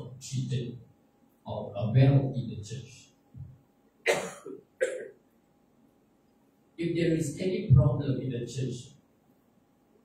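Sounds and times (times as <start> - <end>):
man coughing: 4.1 - 5.2.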